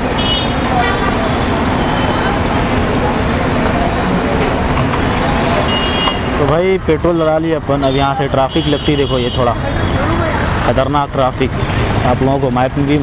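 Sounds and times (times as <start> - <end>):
traffic noise: 0.0 - 13.0.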